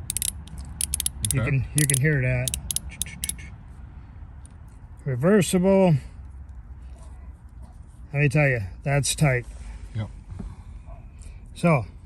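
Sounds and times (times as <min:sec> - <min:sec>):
ratcheting wrench clicks: 0:00.0 - 0:03.4.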